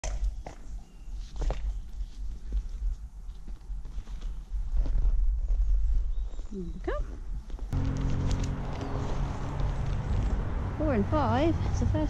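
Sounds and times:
steady low rumble: 7.3 - 12.0.

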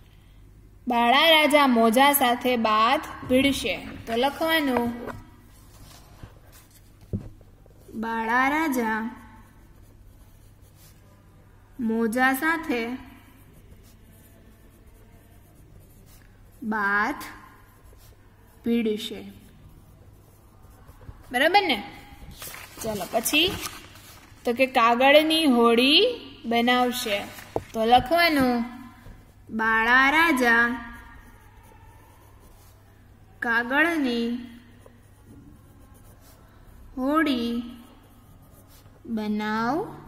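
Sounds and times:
person speaking: 0.9 - 6.9, 11.8 - 32.5
pen scratching on paper: 2.2 - 40.0.

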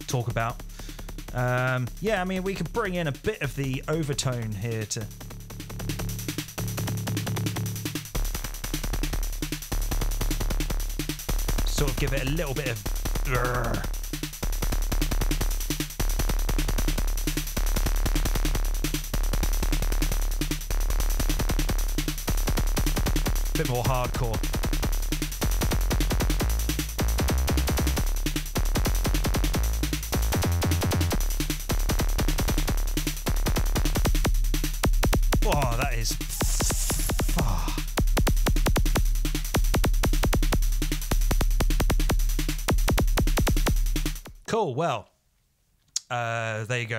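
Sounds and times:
synthesizer kick clicks: 5.1 - 44.4.

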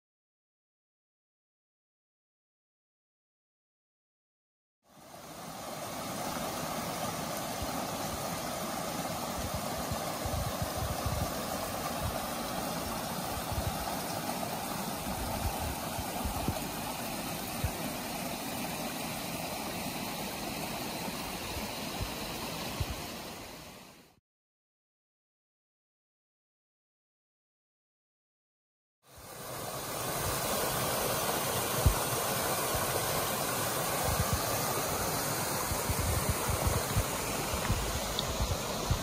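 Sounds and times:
stream splashing over rocks: 5.0 - 23.7, 29.2 - 39.0
wind buffeting on microphone: 9.4 - 12.2, 13.4 - 13.9, 15.1 - 16.8, 34.0 - 34.5, 35.6 - 39.0.

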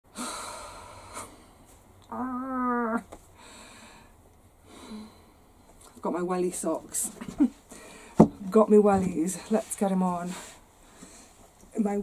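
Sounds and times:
woman breathy exhale: 0.1 - 1.5.

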